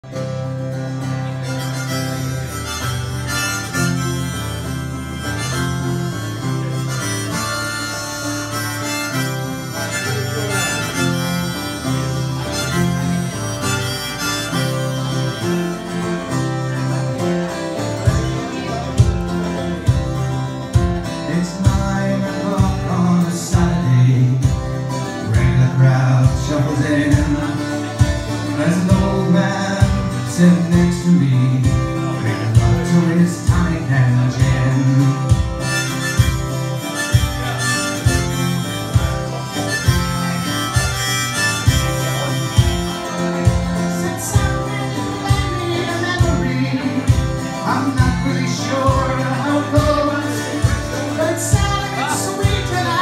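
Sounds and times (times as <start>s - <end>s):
harmonica: 0.0s - 53.0s
strummed acoustic guitar: 0.0s - 53.0s
low thumping beat: 19.0s - 22.0s, 48.0s - 53.0s.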